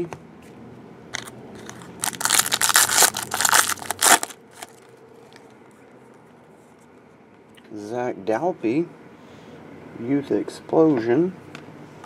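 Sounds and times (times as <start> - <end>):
foil wrapper crinkling and tearing: 1.2 - 4.8.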